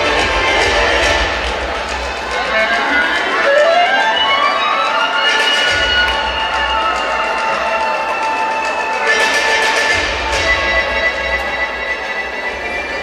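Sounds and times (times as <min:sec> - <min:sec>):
music with long held notes: 0:00.0 - 0:13.0.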